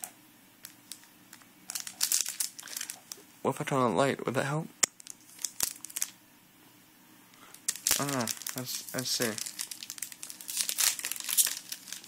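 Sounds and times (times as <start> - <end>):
handling rustle: 7.7 - 12.0.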